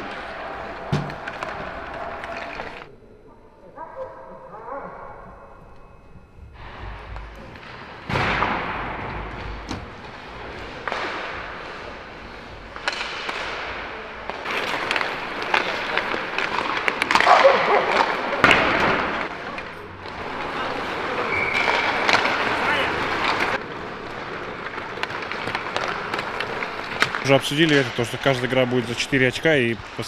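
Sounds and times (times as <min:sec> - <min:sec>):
hockey sticks and pucks clacking: 0:00.0 - 0:02.9, 0:07.1 - 0:30.0
voices calling: 0:00.0 - 0:06.2
skate blades scraping ice: 0:14.3 - 0:18.4, 0:20.1 - 0:28.5.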